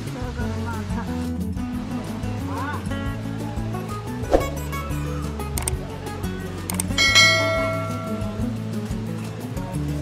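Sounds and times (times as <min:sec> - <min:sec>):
background music: 0:00.0 - 0:10.0
quick clicks: 0:05.5 - 0:05.8, 0:06.7 - 0:07.0
bell chime: 0:07.0 - 0:08.5.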